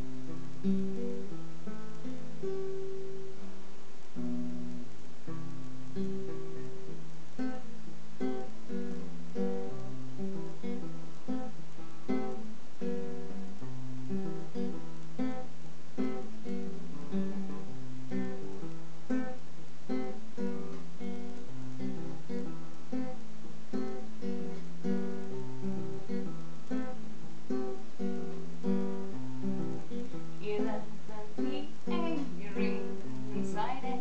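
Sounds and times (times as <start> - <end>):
classical guitar playing chords: 0.0 - 34.0.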